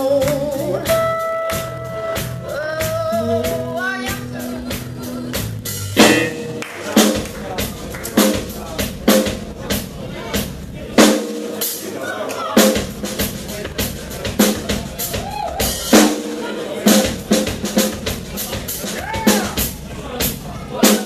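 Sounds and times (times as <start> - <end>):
drum kit solo: 0.0 - 21.0.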